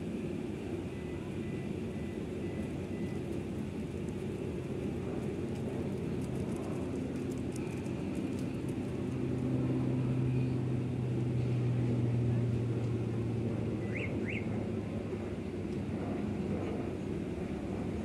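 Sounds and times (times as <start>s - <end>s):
propeller airplane drone: 0.0s - 18.0s.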